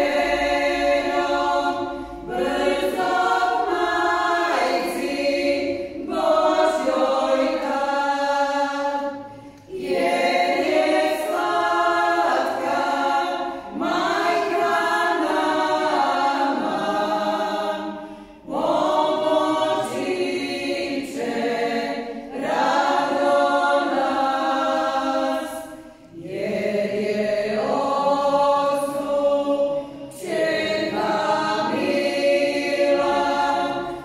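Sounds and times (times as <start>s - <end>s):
women singing a cappella: 0.0s - 34.0s.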